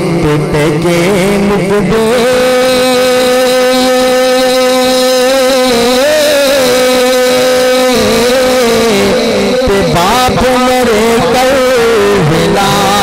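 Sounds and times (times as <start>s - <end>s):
low steady drone: 0.0s - 13.0s
man singing a long note: 0.0s - 13.0s.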